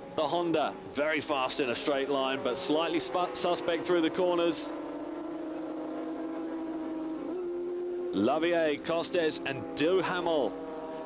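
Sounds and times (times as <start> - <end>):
motorcycle engines at high revs: 0.0 - 11.0.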